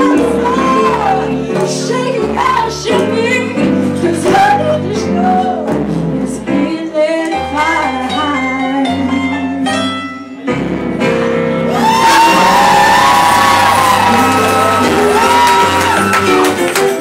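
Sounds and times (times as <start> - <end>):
woman singing blues: 0.0 - 10.1.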